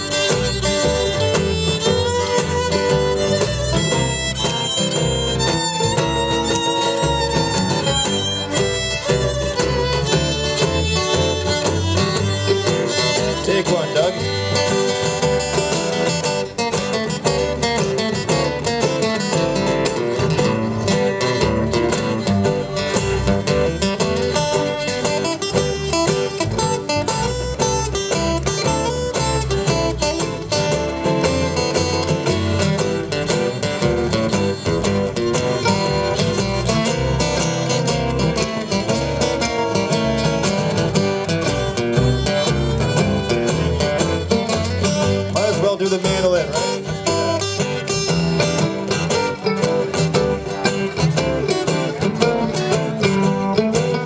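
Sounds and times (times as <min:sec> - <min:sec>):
acoustic guitar picking runs: 0:00.0 - 0:54.0
mandolin: 0:00.0 - 0:54.0
strummed rhythm guitar: 0:00.0 - 0:54.0.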